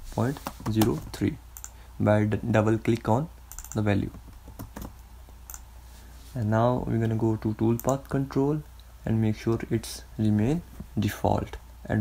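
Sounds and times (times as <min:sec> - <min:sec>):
computer keystrokes and clicks: 0:01.6 - 0:01.8, 0:03.5 - 0:05.7, 0:07.7 - 0:08.1.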